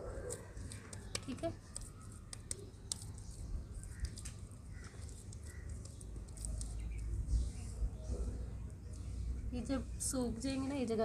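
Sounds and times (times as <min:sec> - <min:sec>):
hands shaping wet mud: 0:00.0 - 0:07.7.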